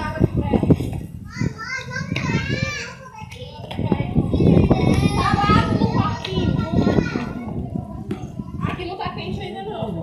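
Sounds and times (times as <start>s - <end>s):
children calling and playing: 0.0s - 10.0s.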